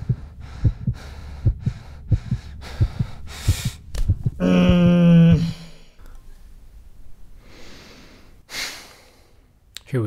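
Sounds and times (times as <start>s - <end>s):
heartbeat thumps: 0.0s - 5.8s
steady low hum: 0.0s - 8.5s.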